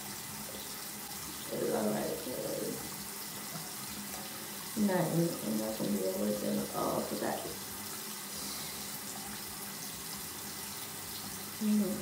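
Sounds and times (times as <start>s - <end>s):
tap water running into sink: 0.0s - 12.0s.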